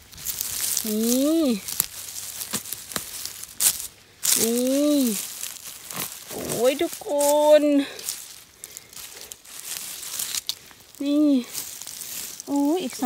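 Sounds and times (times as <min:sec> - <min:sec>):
dry leaves crackling and rustling: 0:00.0 - 0:13.0.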